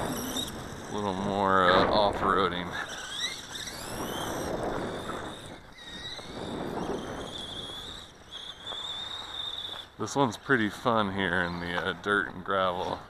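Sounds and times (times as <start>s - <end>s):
rc buggy drivetrain whine: 0.0s - 13.0s.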